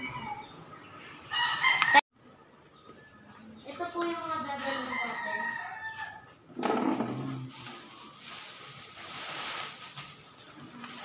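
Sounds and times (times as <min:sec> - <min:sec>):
plastic bags rustling: 0:07.1 - 0:11.0.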